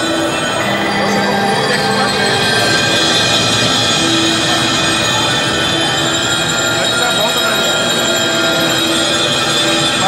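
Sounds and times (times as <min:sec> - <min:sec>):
marimba: 0:00.0 - 0:10.0.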